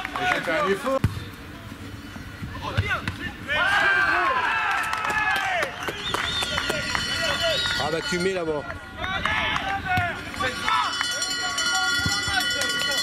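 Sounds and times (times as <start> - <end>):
people shouting and calling: 2.7 - 5.6.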